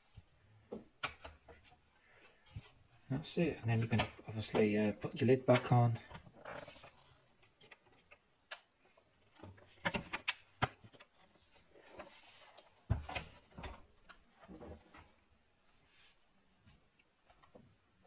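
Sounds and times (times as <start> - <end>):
laptop handling clicks and knocks: 9.4 - 11.1.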